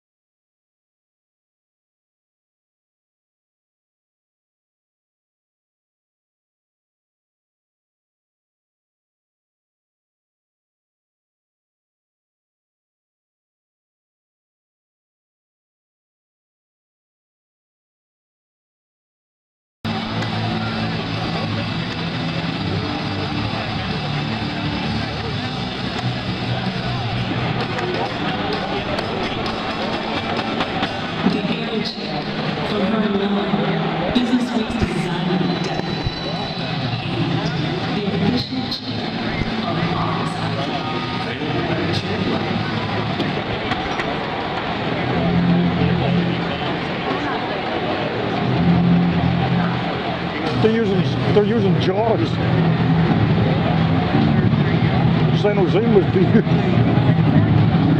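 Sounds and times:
music over arena sound system: 0:19.9 - 0:57.9
voices in music: 0:19.9 - 0:57.9.

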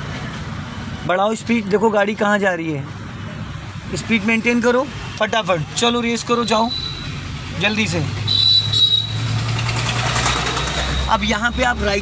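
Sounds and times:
road noise: 0:00.0 - 0:12.0
car engine accelerating: 0:07.6 - 0:11.3.

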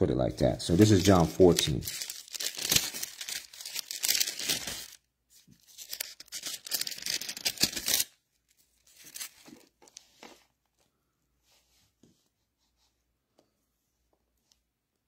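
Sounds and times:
book pages turning and rustling: 0:00.7 - 0:10.9.

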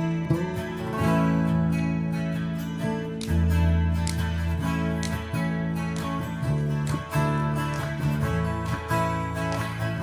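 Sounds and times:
electric bass guitar: 0:00.0 - 0:10.0
strummed acoustic guitars: 0:00.0 - 0:10.0.

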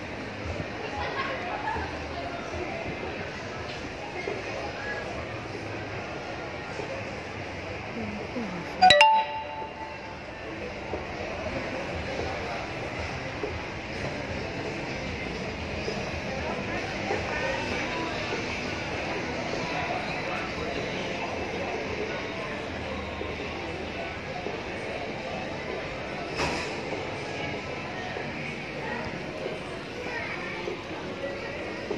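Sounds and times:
distant voices and activity: 0:00.0 - 0:08.8, 0:09.8 - 0:31.9.

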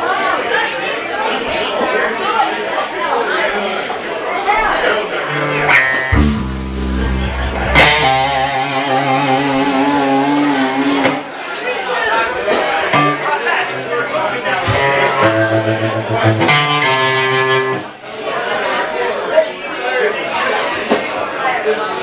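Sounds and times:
room chatter: 0:00.0 - 0:22.0
bass guitar held note: 0:05.3 - 0:11.3, 0:12.9 - 0:18.0
electric guitar chords ringing: 0:05.3 - 0:11.3, 0:12.9 - 0:18.0.

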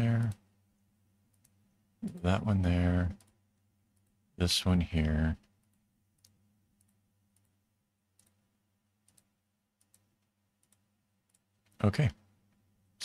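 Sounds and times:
faint low hum: 0:00.0 - 0:13.0
computer mouse clicks: 0:01.3 - 0:02.2, 0:05.4 - 0:08.4, 0:09.0 - 0:11.8.

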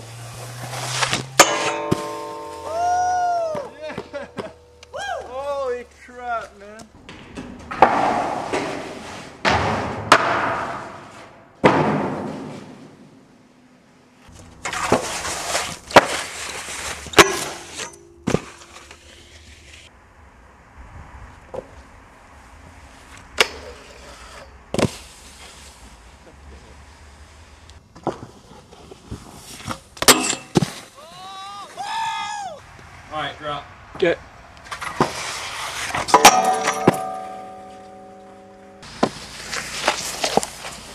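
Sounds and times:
board sliding and scraping: 0:00.0 - 0:02.6, 0:07.3 - 0:13.1, 0:14.3 - 0:19.9, 0:22.9 - 0:26.2, 0:26.8 - 0:31.0, 0:34.6 - 0:38.0, 0:38.8 - 0:40.9.

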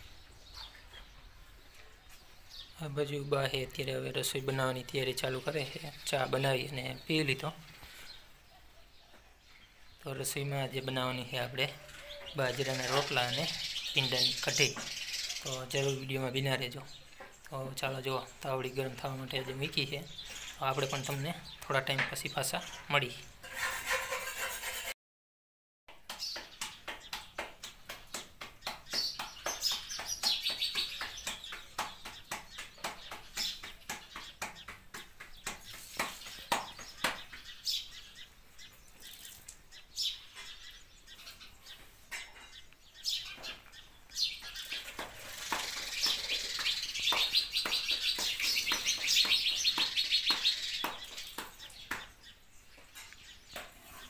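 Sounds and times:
birds chirping: 0:00.0 - 0:24.3, 0:25.9 - 0:54.0
dough patted between palms: 0:25.9 - 0:37.4, 0:44.4 - 0:52.2.

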